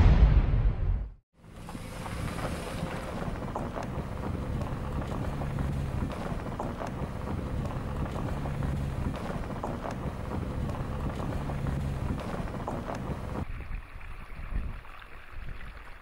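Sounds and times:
vehicle driving rumble: 0:01.4 - 0:13.5
wind noise on microphone: 0:01.7 - 0:16.0.

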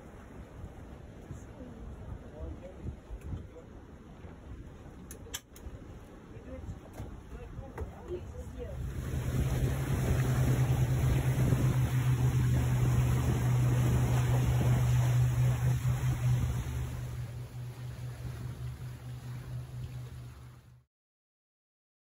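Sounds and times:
water rushing: 0:00.0 - 0:20.8
outboard engine hum: 0:00.0 - 0:20.9
wind: 0:00.0 - 0:20.9.

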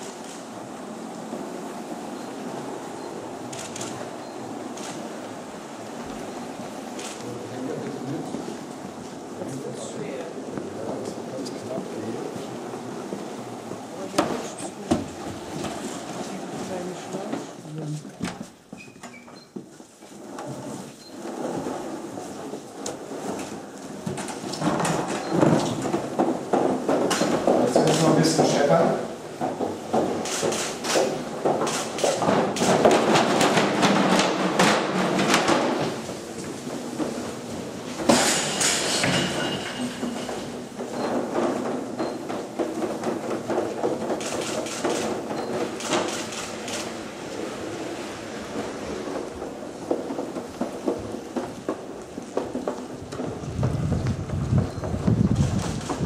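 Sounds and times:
wooden frames dragged over floor: 0:00.0 - 0:56.0.

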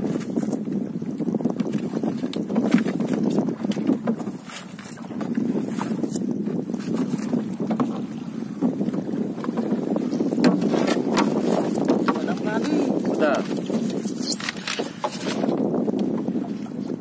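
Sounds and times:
water lapping against boat hull: 0:00.0 - 0:17.0
wind buffeting microphone: 0:00.0 - 0:17.0
light knocks against boat: 0:06.9 - 0:13.2.

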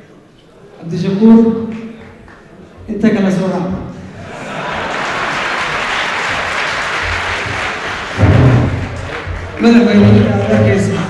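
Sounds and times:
crowd applauding: 0:04.2 - 0:11.0.

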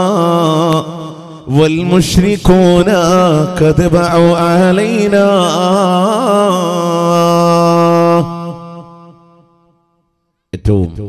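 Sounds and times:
man chanting into a microphone: 0:00.0 - 0:09.4, 0:10.6 - 0:11.0.

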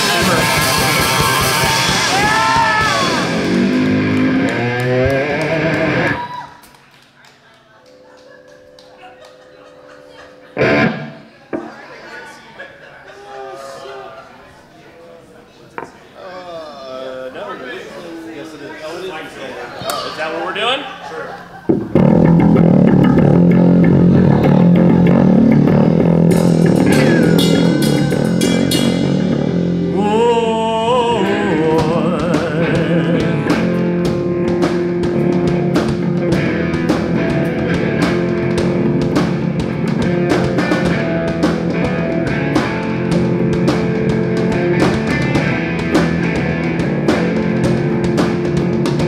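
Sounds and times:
rock band playing loudly: 0:00.0 - 0:06.3, 0:08.6 - 0:11.7, 0:21.7 - 0:49.0
drum cymbals: 0:26.2 - 0:30.0
people talking: 0:29.9 - 0:33.6.

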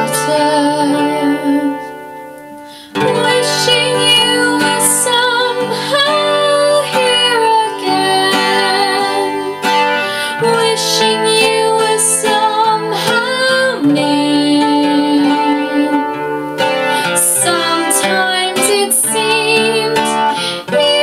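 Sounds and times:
acoustic guitar: 0:00.0 - 0:21.0
woman singing a ballad: 0:00.0 - 0:21.0.

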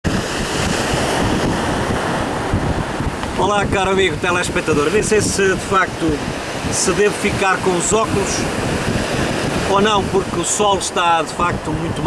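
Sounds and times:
wind buffeting microphone: 0:00.0 - 0:12.0
surf breaking on rocks: 0:00.1 - 0:12.0.

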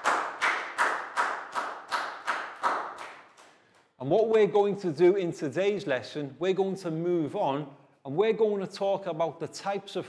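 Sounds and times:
rhythmic hand clapping: 0:00.0 - 0:04.6.

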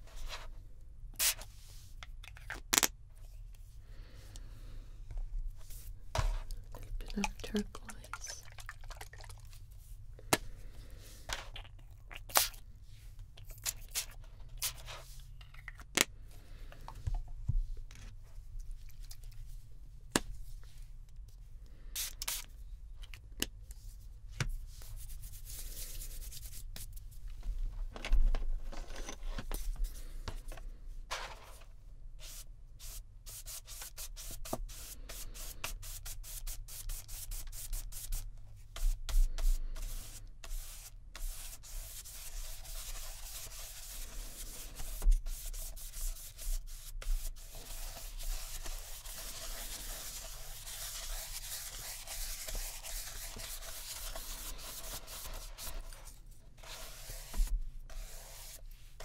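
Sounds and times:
paintbrush scratching on paper: 0:38.8 - 0:59.0.

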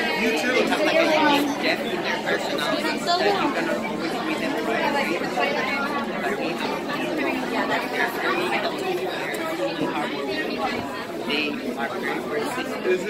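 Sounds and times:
crowd chatter: 0:00.0 - 0:13.0
man talking: 0:11.2 - 0:13.0.

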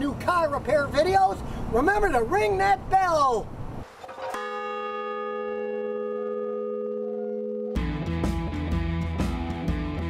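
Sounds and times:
large bell ringing: 0:04.2 - 0:08.0.

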